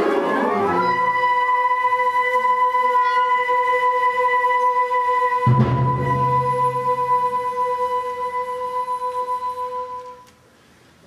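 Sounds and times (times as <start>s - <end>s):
concert band ensemble: 0.0s - 10.3s
flutes holding a steady note: 0.0s - 10.3s.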